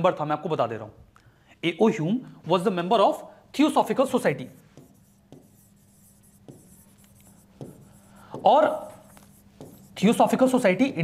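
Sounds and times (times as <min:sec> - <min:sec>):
pen scratching on board: 0:04.6 - 0:10.4
pen tapping on board: 0:04.7 - 0:09.9.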